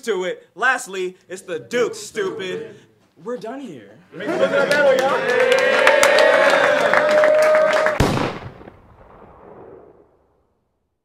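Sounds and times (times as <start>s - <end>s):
crowd cheering and clapping: 4.1s - 8.2s.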